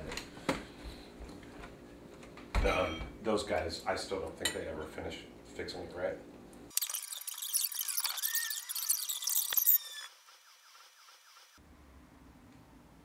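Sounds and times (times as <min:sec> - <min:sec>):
high-pitched electronic screech: 0:06.7 - 0:11.6.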